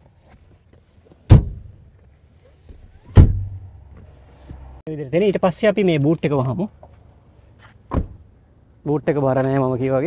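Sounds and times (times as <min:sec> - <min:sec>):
car seatbacks thudding into place: 0:03.0 - 0:03.6, 0:07.9 - 0:08.2.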